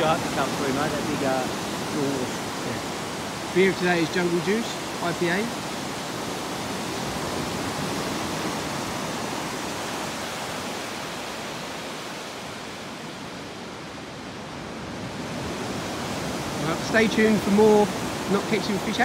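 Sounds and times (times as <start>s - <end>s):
surf breaking on beach: 0.0s - 13.4s, 14.6s - 19.0s.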